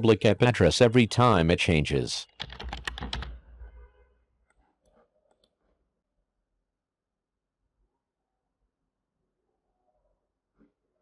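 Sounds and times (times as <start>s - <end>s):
computer keyboard keystrokes: 2.4s - 3.4s.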